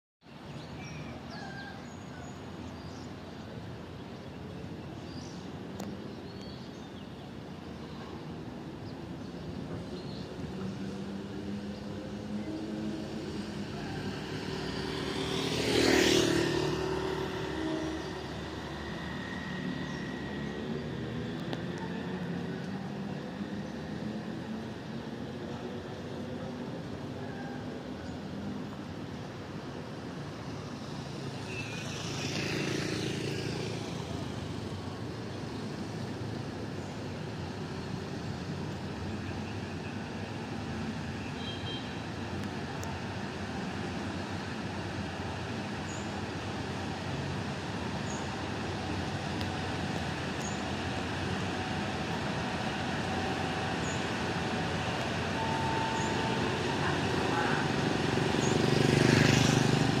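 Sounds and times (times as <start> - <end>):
diesel railcar approaching: 0.4 - 41.4, 42.0 - 60.0.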